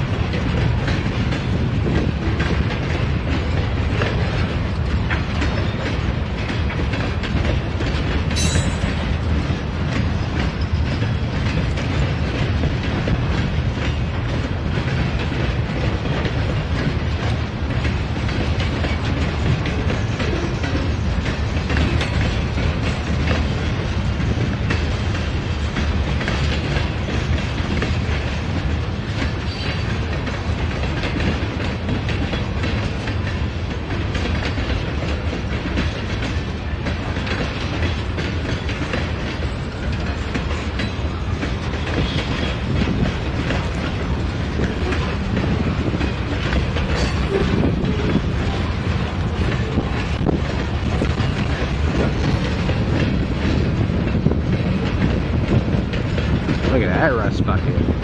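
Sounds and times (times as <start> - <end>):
freight train rumbling past: 0.0 - 58.0
train wheels clicking on rails: 0.0 - 58.0.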